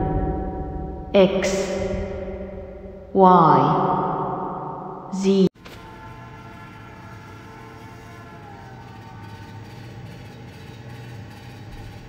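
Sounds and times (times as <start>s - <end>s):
train running on rails: 7.6s - 12.0s.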